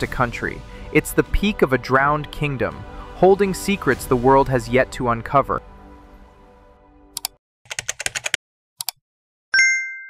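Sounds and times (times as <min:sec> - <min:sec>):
background music: 0:00.0 - 0:07.4
computer keyboard typing clicks: 0:07.2 - 0:09.0.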